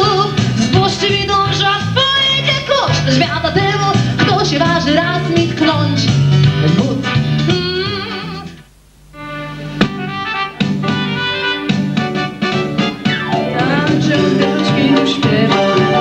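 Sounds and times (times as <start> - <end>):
woman singing: 0.0 - 8.5, 13.4 - 16.0
keyboards: 0.0 - 16.0
electric guitar: 9.3 - 16.0.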